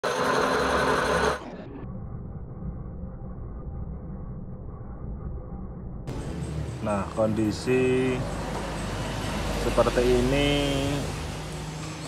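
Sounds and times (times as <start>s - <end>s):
lathe machining whirr: 0.0s - 1.5s
low hum: 0.0s - 12.0s.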